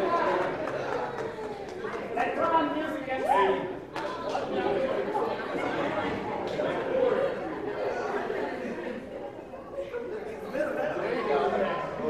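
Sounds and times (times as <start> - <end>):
group of people chattering: 0.0 - 12.0.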